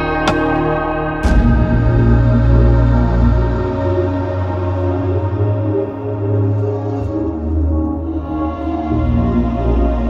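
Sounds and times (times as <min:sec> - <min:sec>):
deep bass note: 0:00.0 - 0:04.1.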